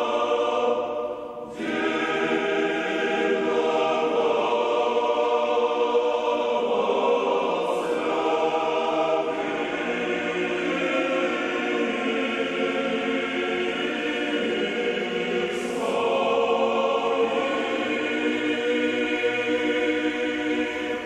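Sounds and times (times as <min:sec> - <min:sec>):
male choir chanting: 0:00.0 - 0:21.0.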